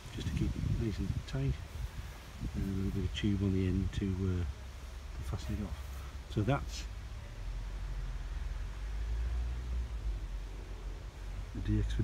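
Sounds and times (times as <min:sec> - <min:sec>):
wind rumble on microphone: 0:00.0 - 0:05.8
faint hiss: 0:00.0 - 0:12.0.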